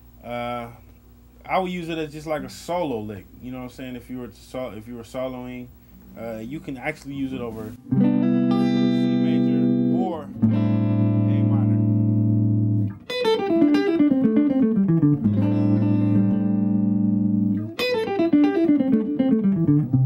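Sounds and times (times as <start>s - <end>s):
fast descending guitar lick: 7.8s - 20.0s
guitar chord ringing: 7.8s - 20.0s.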